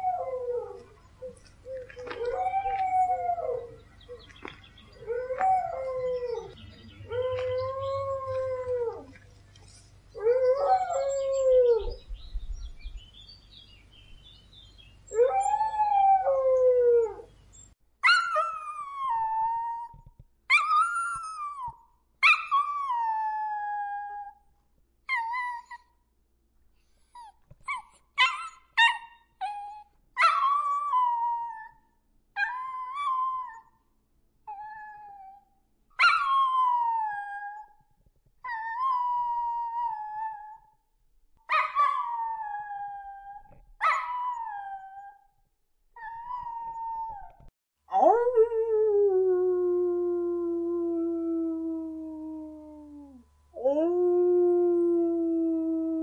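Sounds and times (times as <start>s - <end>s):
dogs howling: 0.0s - 9.2s
dogs yipping: 27.1s - 30.7s.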